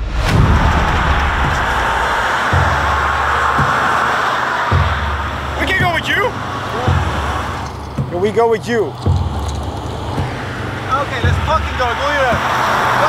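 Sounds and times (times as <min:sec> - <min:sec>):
background music with low bass: 0:00.0 - 0:13.0
highway traffic rushing: 0:00.0 - 0:13.0.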